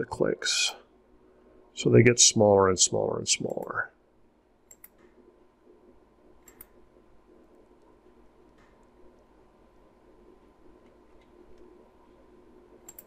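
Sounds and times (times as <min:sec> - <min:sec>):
computer mouse clicks: 0:04.7 - 0:05.2, 0:06.4 - 0:06.8, 0:12.8 - 0:13.0.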